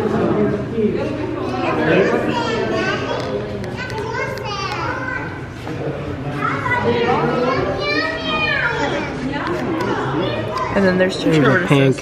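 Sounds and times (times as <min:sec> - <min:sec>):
children talking and calling out: 0:01.0 - 0:12.0.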